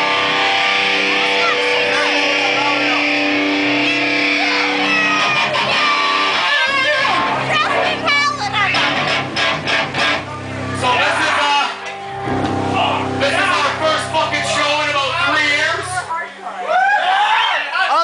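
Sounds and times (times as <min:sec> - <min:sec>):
amplified electric guitar chord: 0:00.0 - 0:16.1
crowd voices and shouts: 0:00.0 - 0:18.0.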